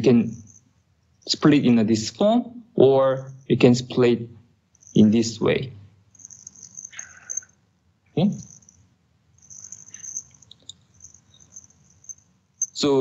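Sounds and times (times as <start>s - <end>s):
faint high-pitched hiss: 0.0s - 13.0s.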